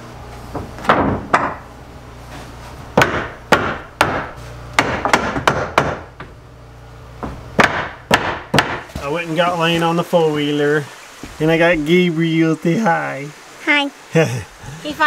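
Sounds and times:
hammer striking wooden boards: 0.5s - 1.6s, 3.0s - 6.3s, 7.2s - 9.1s.

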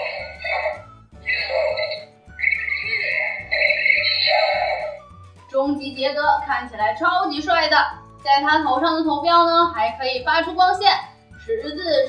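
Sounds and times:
high steady electronic tone: 0.0s - 5.1s.

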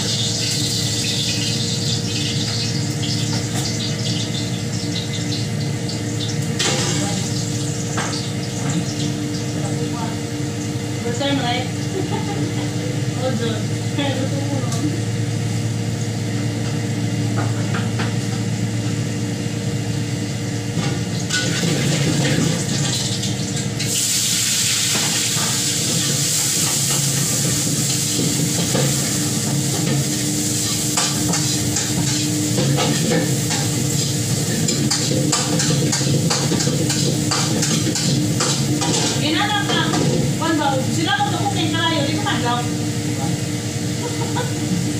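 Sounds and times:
food sizzling in a pan: 0.0s - 10.9s, 21.0s - 44.9s
steady low hum: 0.0s - 44.9s.

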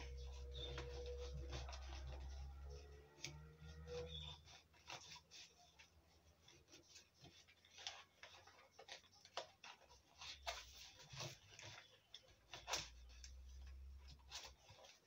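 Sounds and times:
knife scraping plastic bottle: 0.0s - 15.0s.

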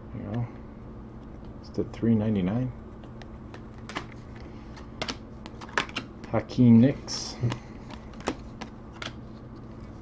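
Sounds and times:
trading cards clicking: 3.0s - 6.1s, 7.4s - 9.2s.

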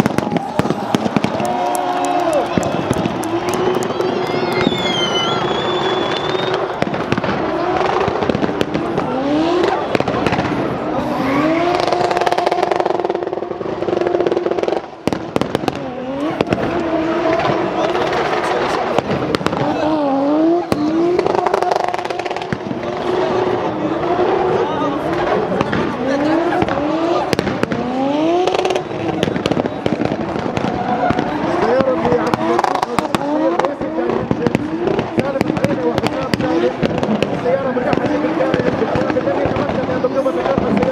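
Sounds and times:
car engine revving hard: 0.9s - 40.9s.

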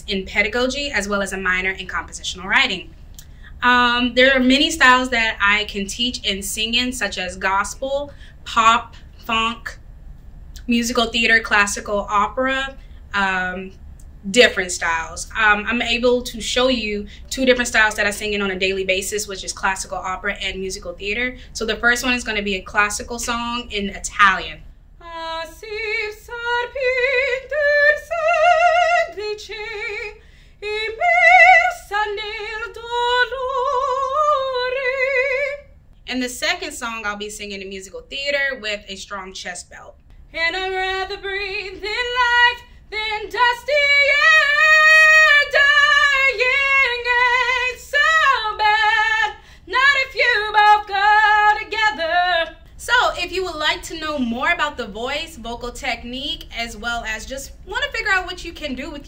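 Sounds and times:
singer's short breaths: 3.2s - 3.6s, 8.1s - 9.2s, 30.2s - 30.6s, 49.4s - 49.7s
woman singing operatically: 14.4s - 35.7s, 40.4s - 59.0s.

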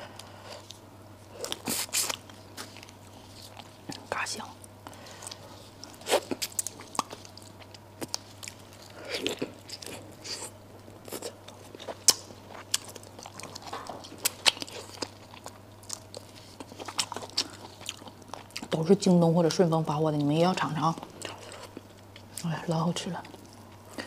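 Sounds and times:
chewing with crunches: 0.0s - 22.5s.

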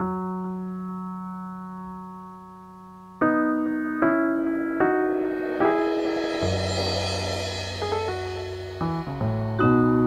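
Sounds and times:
piano chord ringing: 3.2s - 10.0s.

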